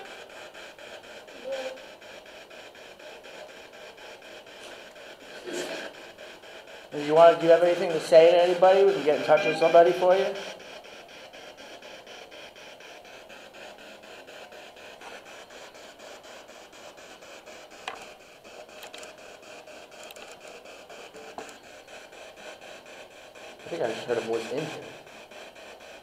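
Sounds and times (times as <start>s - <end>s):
pulsing radio static: 7.0s - 10.7s, 23.6s - 25.1s.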